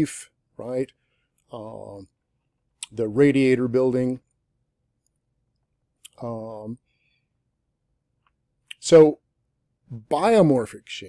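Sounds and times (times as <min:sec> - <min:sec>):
man speaking: 0:00.0 - 0:02.2, 0:02.8 - 0:04.3, 0:06.0 - 0:06.8, 0:08.7 - 0:09.2, 0:09.9 - 0:11.0.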